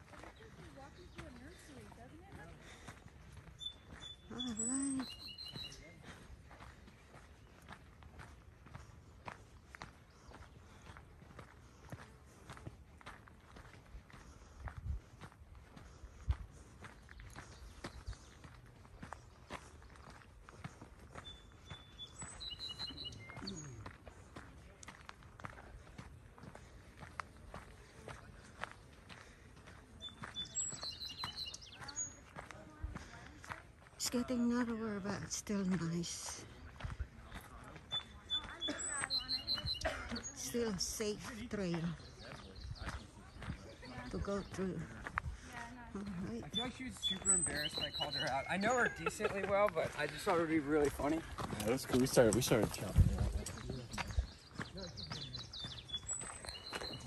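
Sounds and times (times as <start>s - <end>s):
footsteps crunching on sandy dirt: 0.0s - 57.0s.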